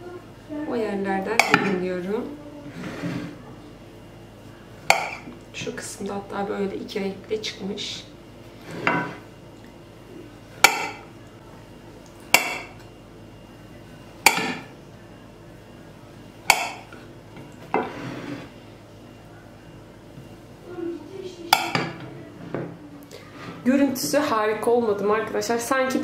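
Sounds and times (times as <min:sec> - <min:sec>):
knife scraping: 0:02.7 - 0:03.4, 0:08.6 - 0:09.3, 0:17.8 - 0:18.5.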